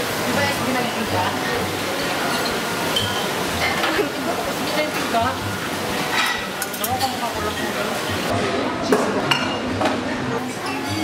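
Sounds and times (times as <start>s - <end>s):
indistinct diner chatter: 0.0s - 11.0s
restaurant din: 0.0s - 11.0s.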